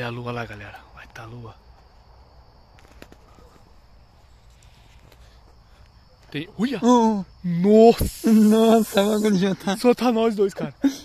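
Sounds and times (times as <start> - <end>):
high insect trill: 0.0 - 11.0.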